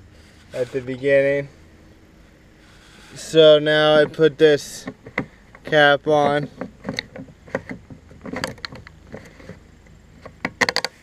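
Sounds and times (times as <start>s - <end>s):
plastic cap clicks and scrapes: 6.5s - 9.6s.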